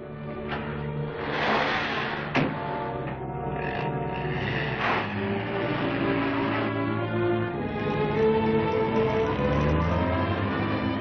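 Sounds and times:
orchestral film music: 0.0s - 11.0s.

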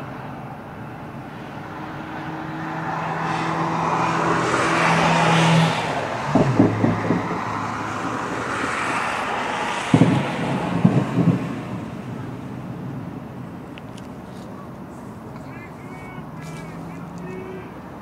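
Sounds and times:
vehicles passing by: 0.0s - 18.0s
distant firework bangs: 6.1s - 13.2s.

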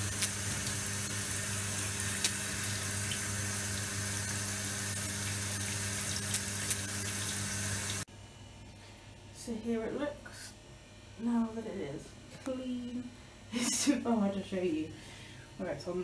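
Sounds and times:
shower water hissing on bathtub: 0.0s - 8.1s.

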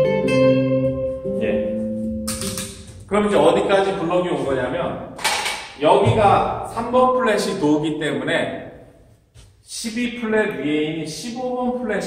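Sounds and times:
man speaking: 3.1s - 5.1s, 5.8s - 8.8s, 9.7s - 12.0s.

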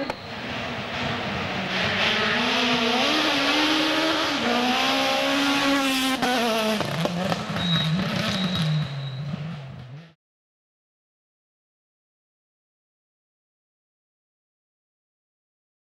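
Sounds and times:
rally car engine at high revs: 0.0s - 10.2s.

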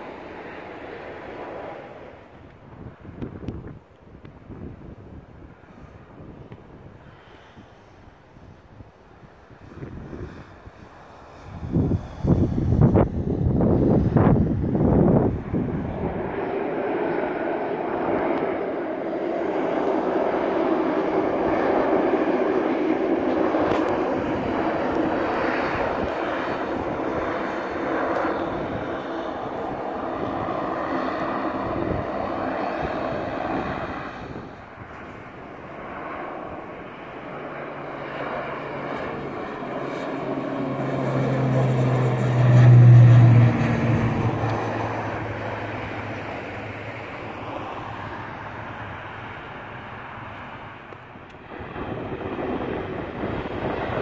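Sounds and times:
deep propeller drone: 0.0s - 54.0s
turboprop engines running: 0.0s - 54.0s.

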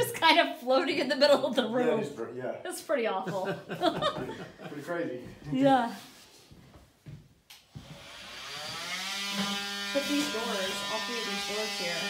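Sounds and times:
power tool motor buzzing: 7.7s - 12.0s.

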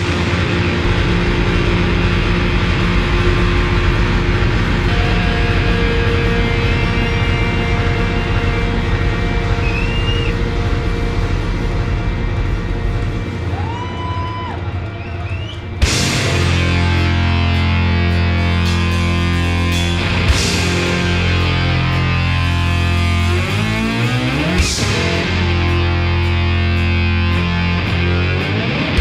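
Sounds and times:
distorted electric guitar drone: 0.0s - 29.0s.

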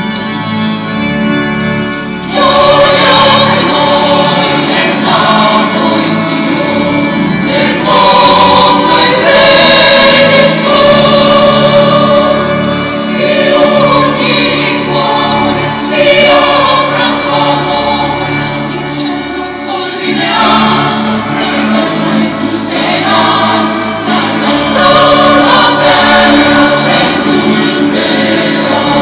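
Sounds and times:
organ: 0.0s - 29.0s
choir singing a hymn: 2.2s - 29.0s.

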